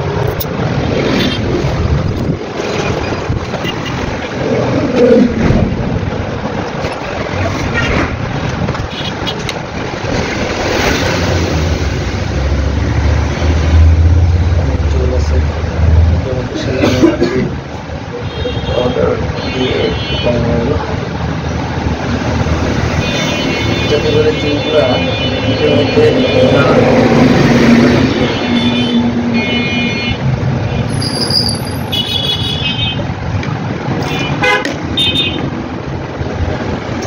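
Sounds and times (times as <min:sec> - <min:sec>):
road traffic: 0:00.0 - 0:37.0
vehicle horns tooting: 0:03.5 - 0:04.1, 0:08.8 - 0:09.4, 0:18.2 - 0:20.8, 0:22.9 - 0:27.1, 0:28.1 - 0:33.1, 0:34.0 - 0:35.5
voices: 0:16.2 - 0:21.1, 0:23.4 - 0:29.0.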